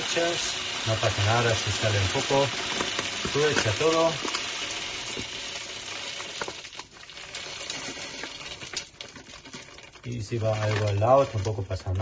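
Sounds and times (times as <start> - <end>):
salt grains pouring: 0.0 - 12.0.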